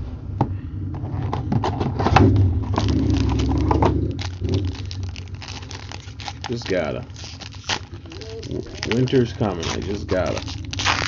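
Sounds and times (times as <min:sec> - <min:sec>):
low handling noise: 0:00.0 - 0:11.0
wrapper crinkling: 0:02.6 - 0:11.0.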